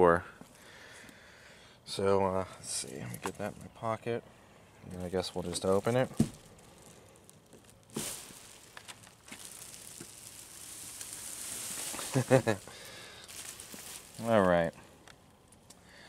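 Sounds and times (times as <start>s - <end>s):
plastic sheeting crinkling: 4.9s - 15.7s.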